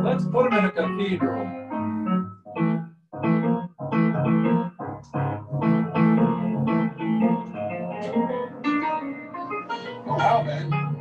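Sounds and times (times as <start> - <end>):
grand piano playing jazz: 0.0 - 11.0.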